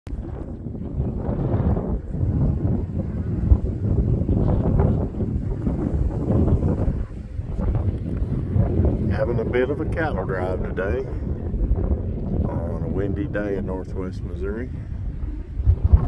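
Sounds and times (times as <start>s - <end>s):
wind gusting across microphone: 0.1s - 16.0s.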